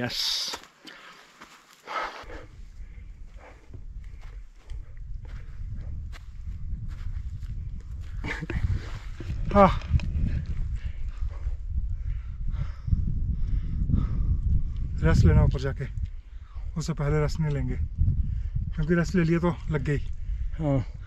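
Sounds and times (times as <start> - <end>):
footsteps on dry grass: 0.4 - 9.4
wind buffeting microphone: 2.2 - 21.0.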